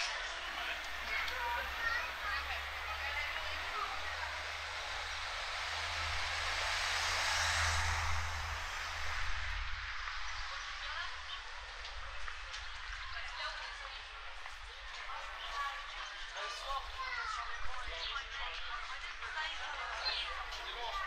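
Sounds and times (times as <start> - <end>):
rushing noise: 0.0 - 13.0
faint voices of passers-by: 0.0 - 21.0.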